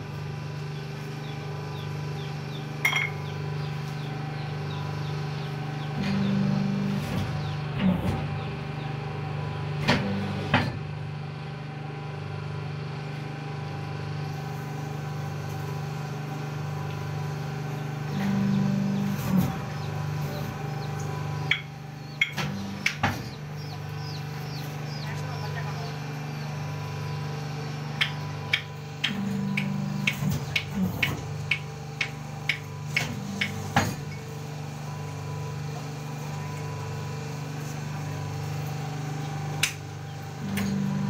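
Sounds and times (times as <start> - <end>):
machine humming: 0.0 - 41.0
louder motor tone: 1.2 - 10.5, 14.3 - 41.0.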